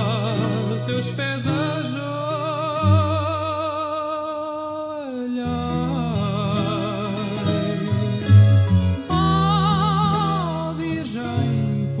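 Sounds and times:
man singing with vibrato: 0.0 - 12.0
plucked guitar notes: 0.0 - 12.0.

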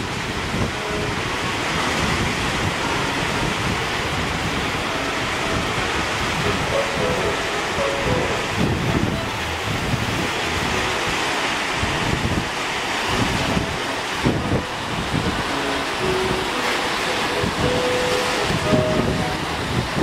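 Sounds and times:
surf breaking over rocks: 0.0 - 20.0
wind buffeting microphone: 0.0 - 20.0.

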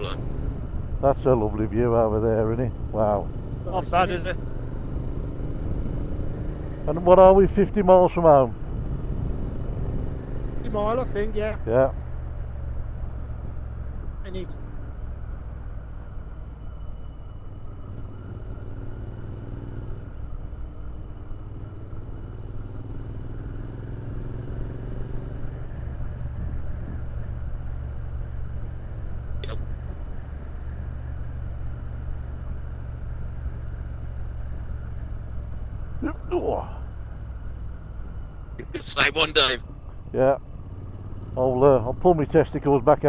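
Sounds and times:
motorcycle engine rumble: 0.0 - 43.0.

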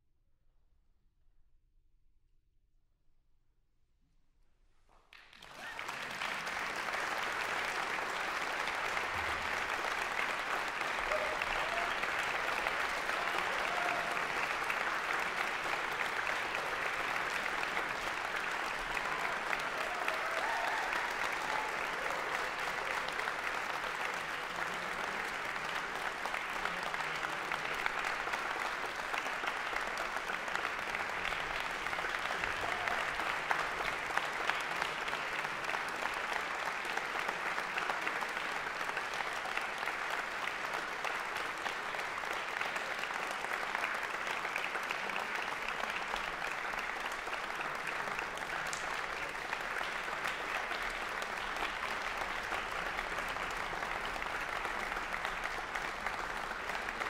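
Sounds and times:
audience applauding: 5.1 - 57.0.

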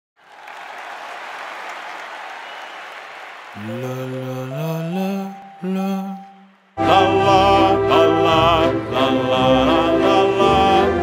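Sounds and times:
audience applause: 0.2 - 4.8.

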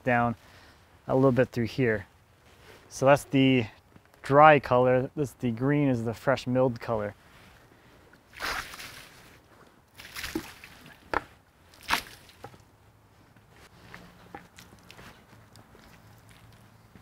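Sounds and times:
water splashing onto wood: 8.3 - 9.3, 9.9 - 12.7.

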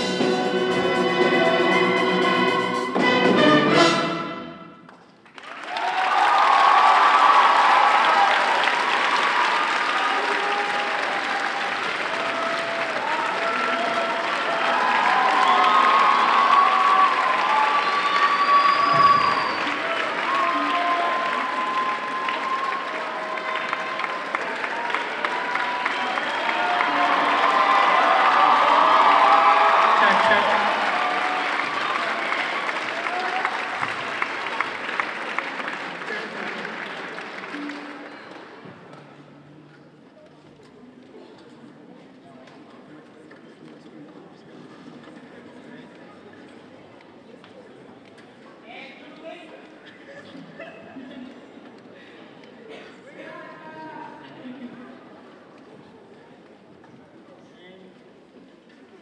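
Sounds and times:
audience applauding: 4.9 - 39.0
crowd shouts and whoops: 5.6 - 34.1.

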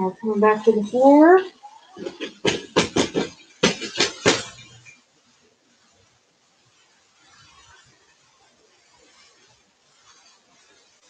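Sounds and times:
faint rustle: 4.6 - 11.0.

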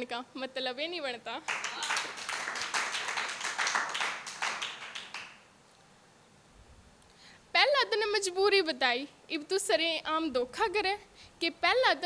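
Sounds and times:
hands clapping: 1.5 - 5.5.

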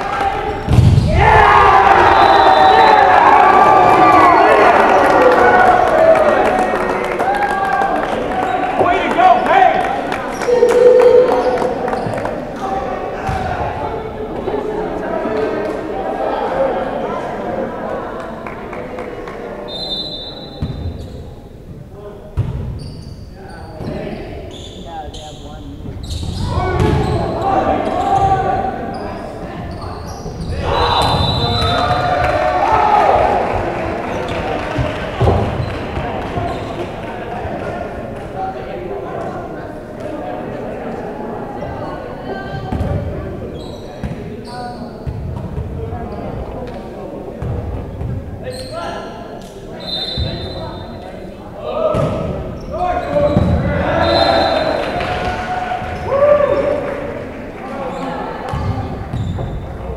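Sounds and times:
players shouting: 0.0 - 17.1, 30.4 - 37.6, 51.6 - 57.0.

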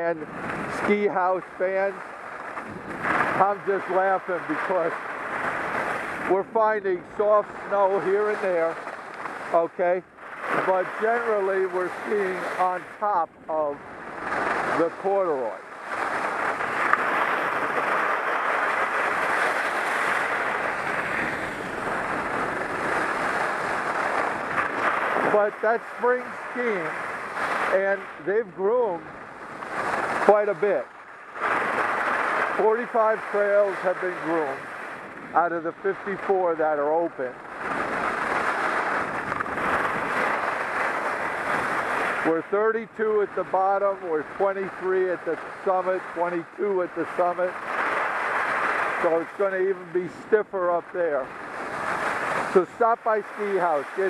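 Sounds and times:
wind on microphone: 0.0 - 42.4, 51.2 - 54.0
skis rushing over snow: 0.0 - 54.0.

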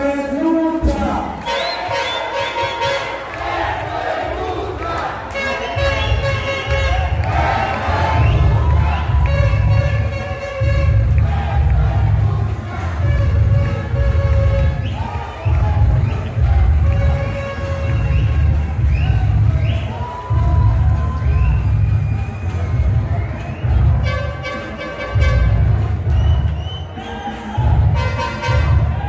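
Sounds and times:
crowd cheering and shouting: 0.0 - 29.0
music with pulsing bass beat: 4.2 - 29.0.

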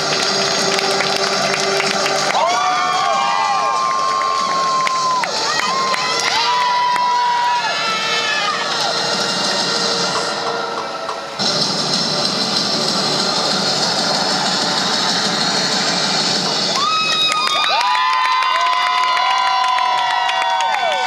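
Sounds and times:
people clapping: 0.0 - 7.6, 14.0 - 21.0
spectators cheering: 0.0 - 10.0, 13.0 - 21.0.

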